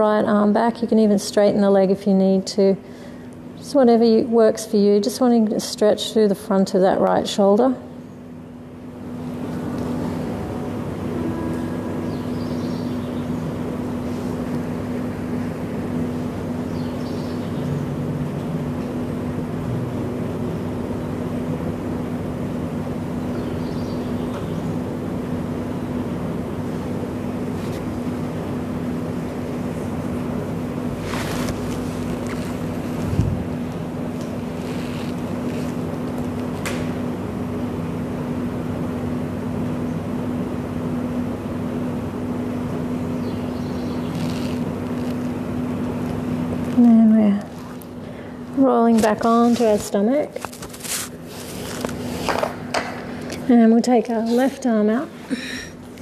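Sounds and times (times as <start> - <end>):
constant low hum: 0.0 - 56.0
low mechanical rumble: 0.0 - 56.0.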